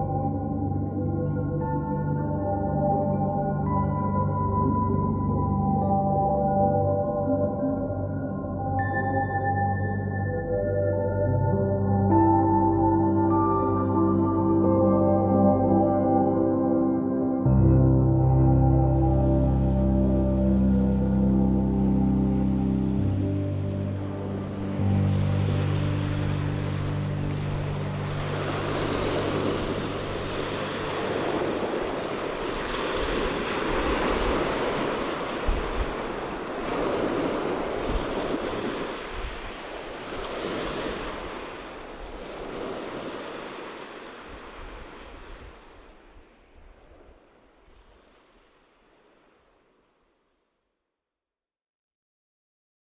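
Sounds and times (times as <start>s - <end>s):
ambient music low notes: 0.0s - 34.4s
ocean waves washing in: 12.3s - 50.2s.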